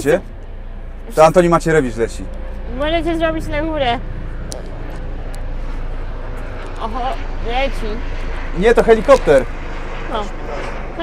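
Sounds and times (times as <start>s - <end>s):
helicopter flying overhead: 0.0s - 11.0s.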